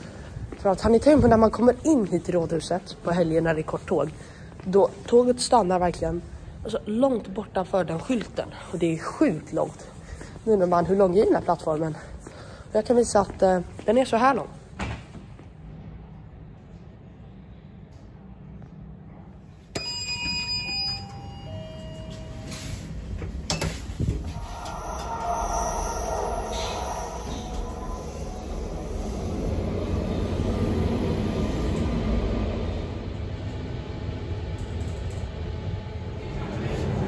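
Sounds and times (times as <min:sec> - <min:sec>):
descending lift chime: 0:19.8 - 0:22.8, 0:24.2 - 0:31.2
lift running rumble: 0:21.2 - 0:37.0.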